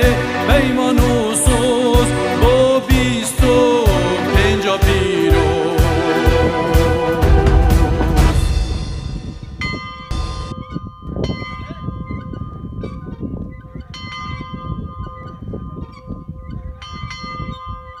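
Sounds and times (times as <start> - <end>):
church bell ringing: 8.4 - 12.9.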